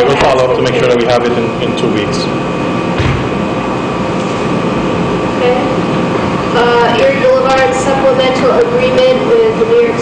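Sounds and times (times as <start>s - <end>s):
air conditioner running: 0.0s - 10.0s.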